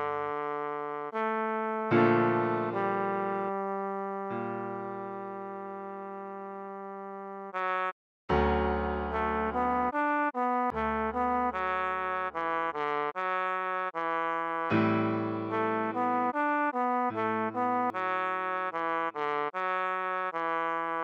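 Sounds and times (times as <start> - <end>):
trombone melody: 0.0 - 21.0
held piano chords: 1.9 - 6.4, 8.3 - 12.4, 14.7 - 18.3.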